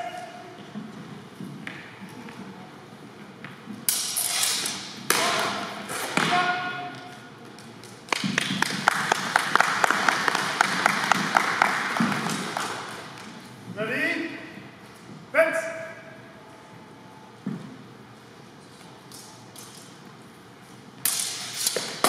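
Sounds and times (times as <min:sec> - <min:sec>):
fencing weapons striking: 0:03.8 - 0:08.6, 0:21.0 - 0:22.0
onlookers clapping in hall: 0:08.1 - 0:13.4.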